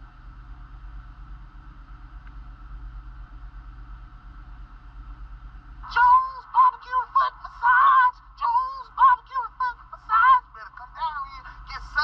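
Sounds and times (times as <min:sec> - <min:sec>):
synthesised singing through tinny speaker: 0:05.8 - 0:12.0.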